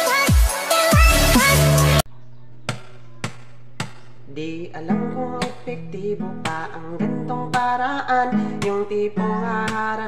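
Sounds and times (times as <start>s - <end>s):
acoustic guitar strumming: 4.9s - 10.0s.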